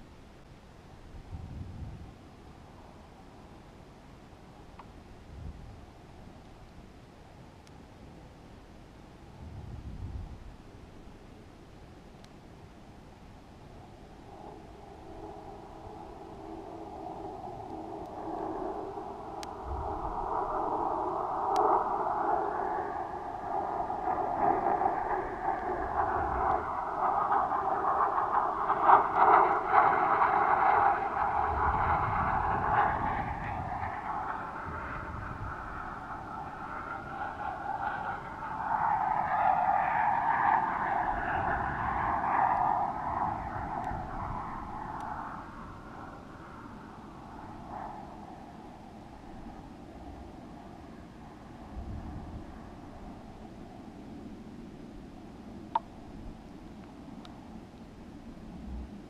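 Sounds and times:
muffled air rushing: 0:12.8 - 0:59.0.

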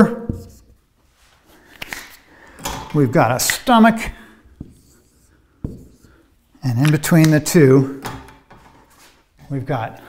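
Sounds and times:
marker clicking on whiteboard: 0:00.2 - 0:00.7, 0:04.6 - 0:08.7.

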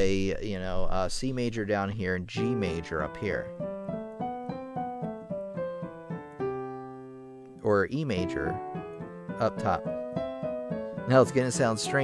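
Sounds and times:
piano scales: 0:02.4 - 0:12.0.

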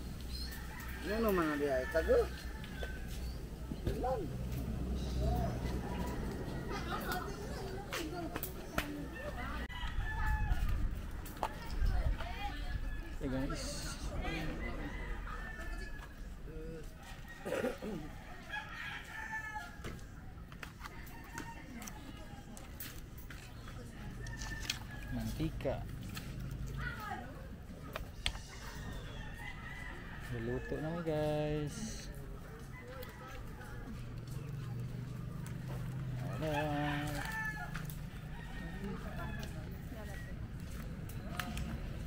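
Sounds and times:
rooster crowing: 0:00.4 - 0:03.4, 0:05.4 - 0:07.1, 0:09.1 - 0:10.8, 0:12.8 - 0:20.0, 0:28.4 - 0:31.2, 0:35.8 - 0:40.8.

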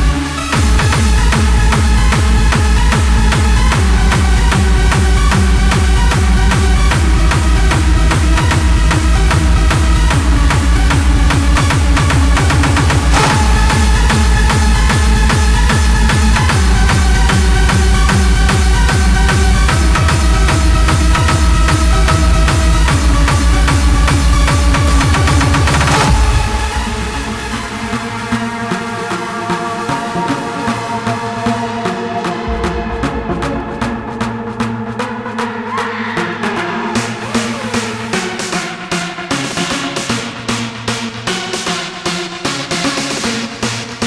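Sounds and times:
hardstyle dance music: 0:00.0 - 0:44.0
distorted kick drum: 0:00.6 - 0:27.8, 0:32.4 - 0:35.1
held synth notes: 0:08.4 - 0:38.8.

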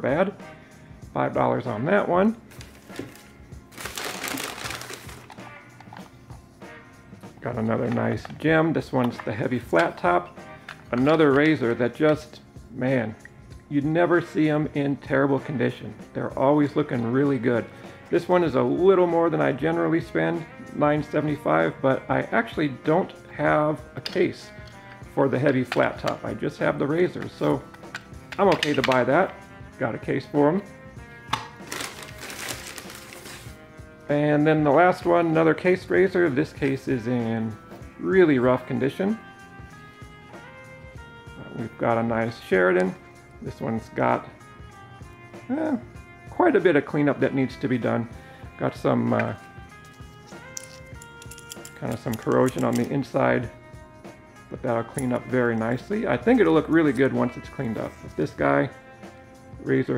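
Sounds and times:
quiet background music: 0:00.0 - 0:59.9
paper bag rustling: 0:02.5 - 0:05.4, 0:31.6 - 0:33.6
plastic case click: 0:27.8 - 0:29.0.

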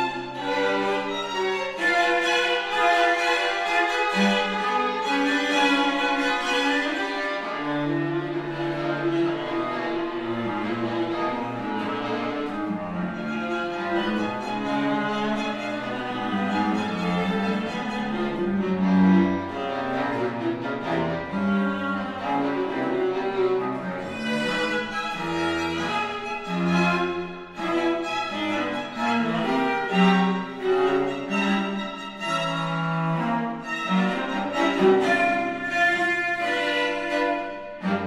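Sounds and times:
string quartet playing: 0:00.0 - 0:38.0.

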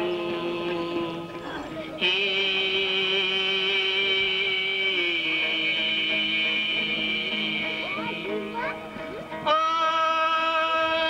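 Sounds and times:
man singing long note: 0:00.0 - 0:08.7, 0:09.4 - 0:11.0.

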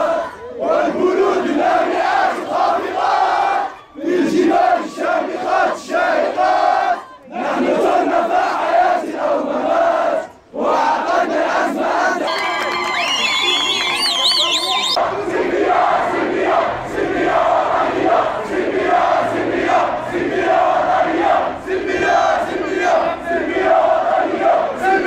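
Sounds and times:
crowd chanting in unison: 0:00.0 - 0:12.4, 0:13.2 - 0:25.0.

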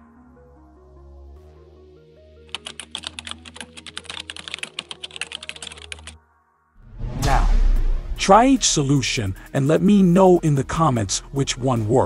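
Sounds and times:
soft background music: 0:00.0 - 0:12.0
rapid keyboard key clicks: 0:02.5 - 0:06.1.

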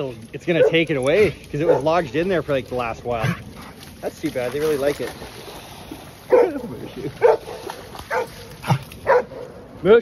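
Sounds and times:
dog barking: 0:00.6 - 0:00.9, 0:01.6 - 0:02.0, 0:06.3 - 0:06.6, 0:07.2 - 0:09.5.

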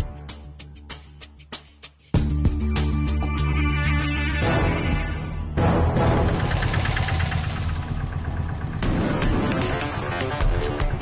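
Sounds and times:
auto-rickshaw engine idling: 0:06.1 - 0:11.0.

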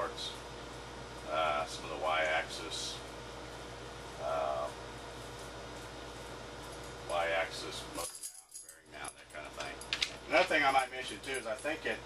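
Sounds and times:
man speaking quietly: 0:04.2 - 0:04.8.

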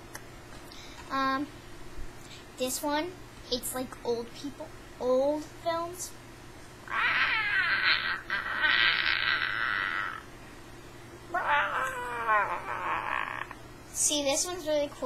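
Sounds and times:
girl wailing high-pitched: 0:06.9 - 0:10.3, 0:11.3 - 0:13.6.

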